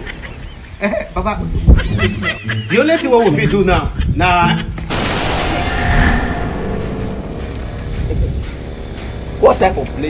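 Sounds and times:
low steady rumbling: 4.9s - 9.4s.

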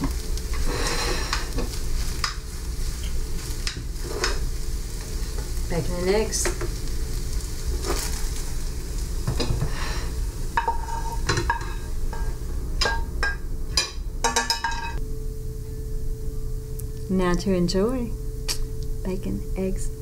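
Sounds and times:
spatula scraping pan: 0.0s - 4.5s, 9.2s - 12.4s
eggs sizzling in a frying pan: 0.0s - 15.0s.

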